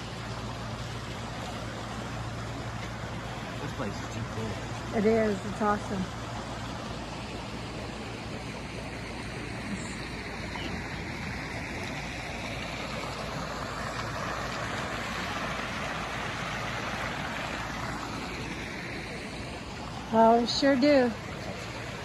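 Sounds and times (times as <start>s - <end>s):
churning water rushing: 0.0s - 22.0s.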